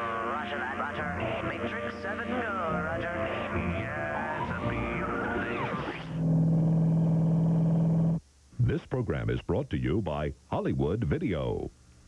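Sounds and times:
car engine drone: 0:03.5 - 0:08.2.

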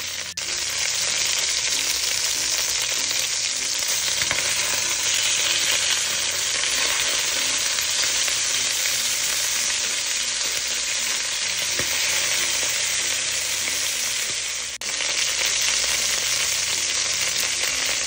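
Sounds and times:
chicken sizzling in hot oil: 0:00.0 - 0:18.0.

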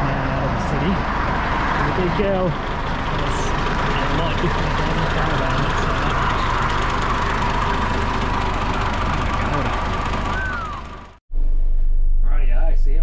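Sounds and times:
bus engine rumble: 0:00.0 - 0:11.2
low hum inside bus cabin: 0:00.0 - 0:11.6.

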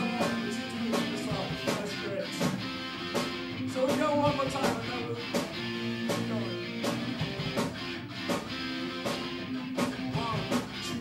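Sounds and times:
metal band playing live: 0:00.0 - 0:11.0
drum hits: 0:05.4 - 0:08.5.

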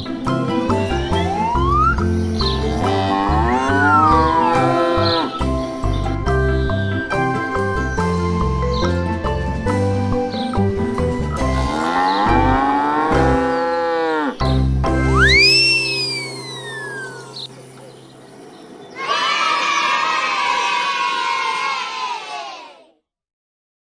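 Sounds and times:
background music with low beat: 0:00.0 - 0:13.7
cow mooing: 0:02.6 - 0:05.4, 0:11.6 - 0:14.4
high swooping whistle: 0:15.0 - 0:17.5
long many-pitched sound: 0:15.1 - 0:18.8.

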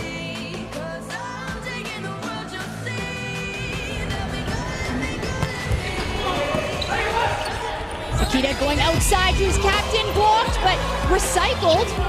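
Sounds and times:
arena background music: 0:00.0 - 0:12.0.

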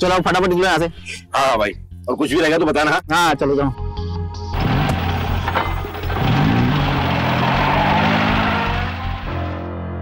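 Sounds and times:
engine revving: 0:04.6 - 0:09.7.

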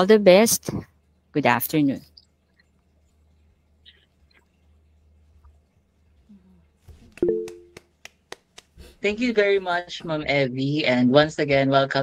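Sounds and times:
person clapping: 0:07.0 - 0:08.8.

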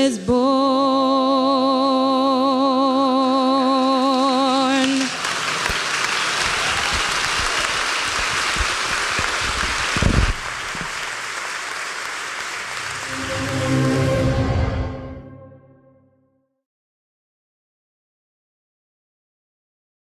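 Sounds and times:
person singing with vibrato: 0:00.0 - 0:05.2
congregation applauding: 0:04.2 - 0:15.1
instrumental music: 0:12.9 - 0:16.2.

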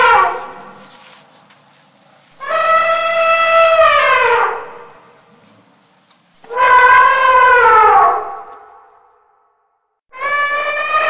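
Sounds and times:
elephant trumpeting: 0:00.0 - 0:01.1, 0:02.4 - 0:05.2, 0:06.4 - 0:09.1.

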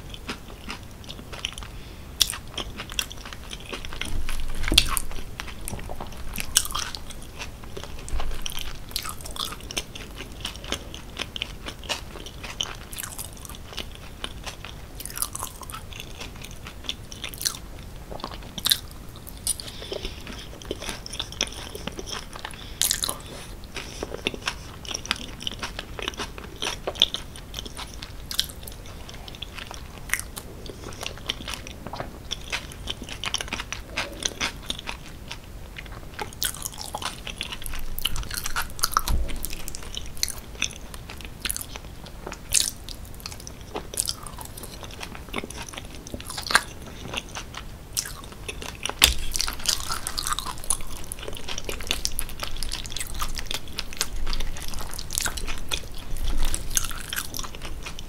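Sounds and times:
chewing and biting fries: 0:00.0 - 0:58.0.

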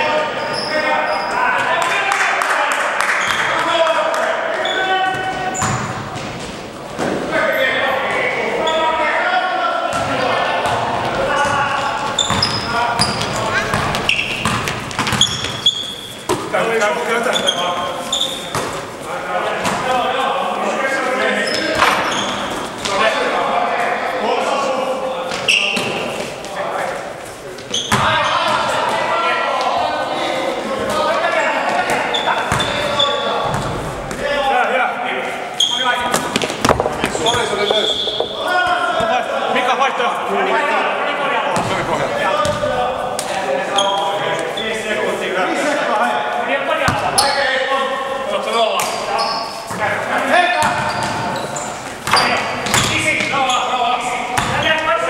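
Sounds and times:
players shouting and talking: 0:00.0 - 0:55.0
shoe squeaks: 0:00.1 - 0:01.4, 0:04.6 - 0:06.0, 0:11.3 - 0:16.3, 0:17.2 - 0:18.8, 0:21.3 - 0:22.8, 0:25.4 - 0:26.2, 0:27.6 - 0:28.5, 0:31.4 - 0:33.6, 0:35.6 - 0:36.1, 0:37.0 - 0:38.5, 0:43.7 - 0:44.8, 0:47.1 - 0:47.6, 0:48.5 - 0:49.8, 0:50.6 - 0:53.8
basketball bouncing on floor: 0:12.3 - 0:15.6, 0:36.2 - 0:38.3.

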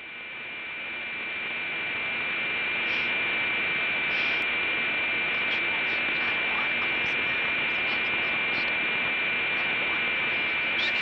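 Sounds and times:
radio static with high whine: 0:00.0 - 0:11.0
faint crackles: 0:01.7 - 0:11.0.

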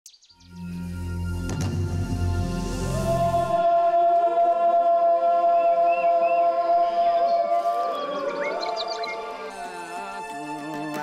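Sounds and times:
music with gliding held notes: 0:07.2 - 0:11.0.

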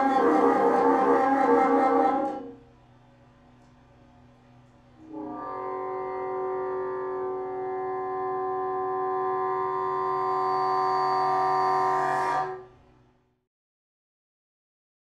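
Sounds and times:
bassoon holding long note: 0:00.0 - 0:02.6, 0:05.0 - 0:12.7.

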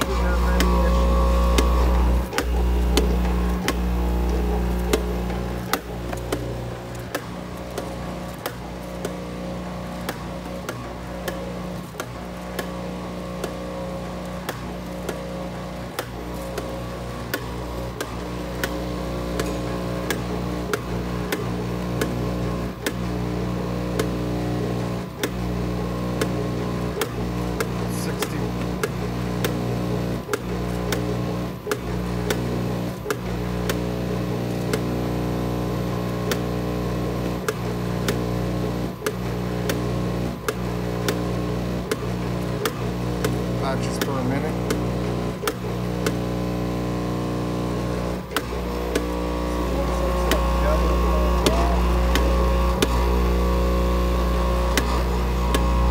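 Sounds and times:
electric hum of feed bowl: 0:00.0 - 0:55.9.

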